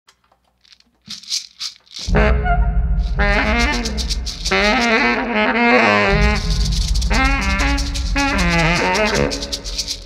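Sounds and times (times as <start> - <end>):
rattling shaker: 0.6 - 2.2, 2.9 - 5.3, 6.1 - 10.0.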